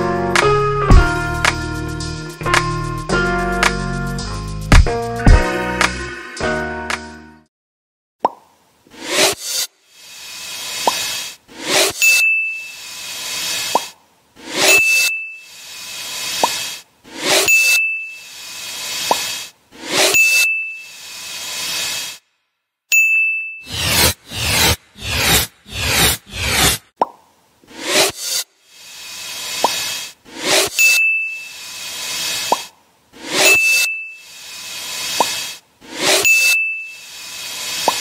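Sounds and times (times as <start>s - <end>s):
whooshes: 8.9s - 9.7s, 23.7s - 27.0s, 27.7s - 28.5s.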